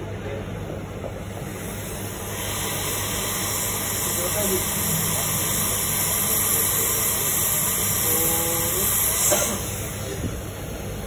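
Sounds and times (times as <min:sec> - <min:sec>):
hot air hissing from nozzle: 0:01.5 - 0:10.8.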